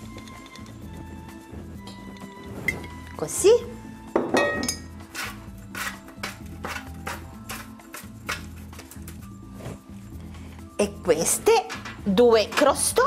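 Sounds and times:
background music with steady beat: 0.0 - 13.0
kitchenware clinking: 4.2 - 8.4, 11.4 - 13.0.

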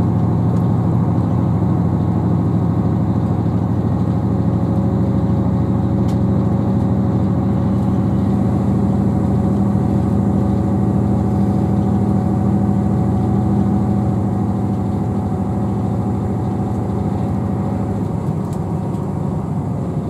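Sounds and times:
diesel engine drone: 0.0 - 20.0
train running noise: 0.0 - 20.0.

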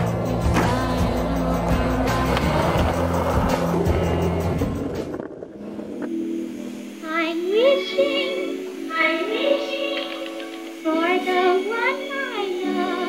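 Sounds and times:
music with steady bass: 0.0 - 5.2
skateboard rolling on concrete: 0.0 - 6.1
skateboard clacks: 0.4 - 3.7.

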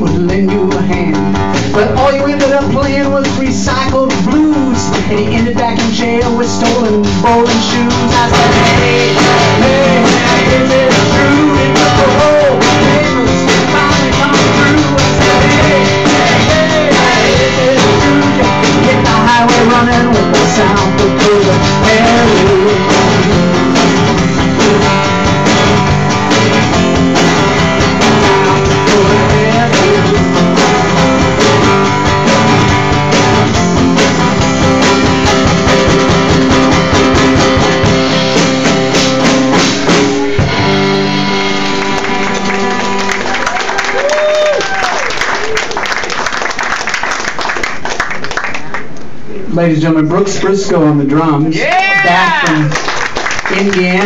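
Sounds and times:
drums and cymbals: 0.0 - 41.8
acoustic guitar: 0.0 - 44.8.

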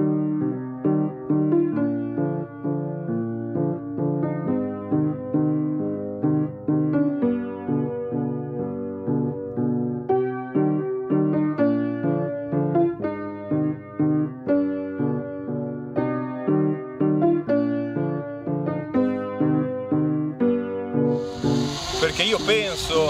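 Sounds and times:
piano music: 0.0 - 23.0.

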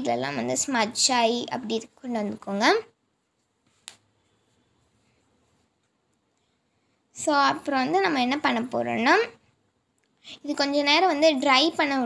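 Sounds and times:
person speaking: 0.0 - 4.0, 7.1 - 9.4, 10.2 - 12.0.

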